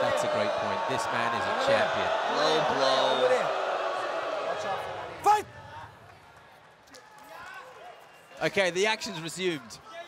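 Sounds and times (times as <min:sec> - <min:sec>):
faint arena background noise: 0:00.0 - 0:10.0.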